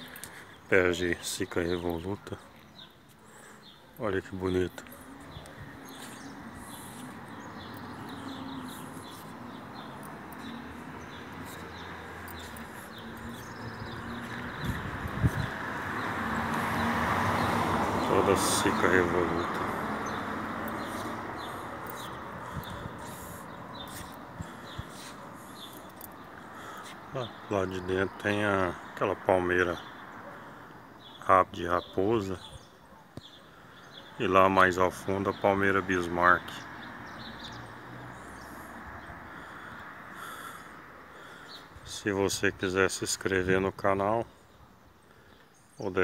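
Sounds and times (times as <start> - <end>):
small birds chirping: 0.0 - 46.0.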